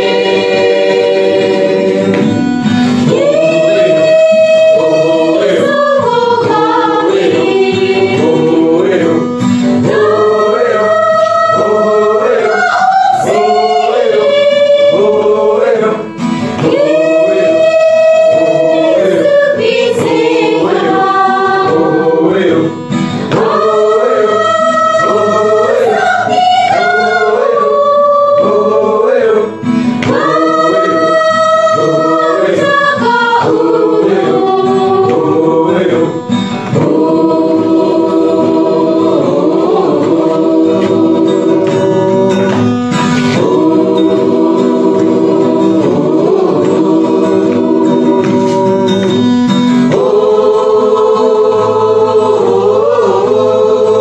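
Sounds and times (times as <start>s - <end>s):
group singing gospel song: 0.0s - 54.0s
instrumental backing: 0.0s - 54.0s.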